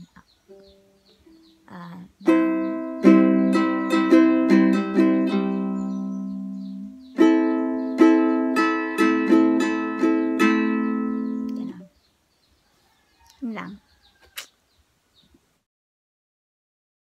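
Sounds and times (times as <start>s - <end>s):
ukulele strumming: 2.2s - 11.8s.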